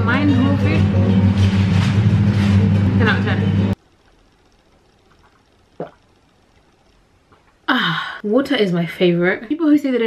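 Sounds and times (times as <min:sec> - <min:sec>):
loud music with bass and voices: 0:00.0 - 0:03.8
person drinking water: 0:05.1 - 0:06.1.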